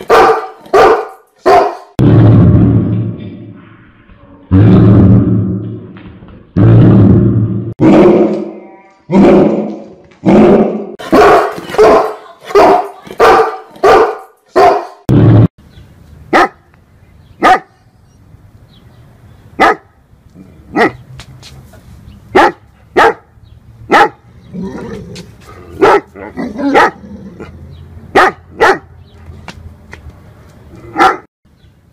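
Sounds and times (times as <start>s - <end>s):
dog barking: 0.0s - 2.0s, 10.5s - 15.0s, 16.3s - 16.6s, 17.4s - 17.8s, 19.6s - 19.9s, 20.7s - 21.0s, 22.3s - 23.3s, 23.9s - 24.2s, 25.8s - 27.0s, 28.1s - 28.9s, 30.9s - 31.3s.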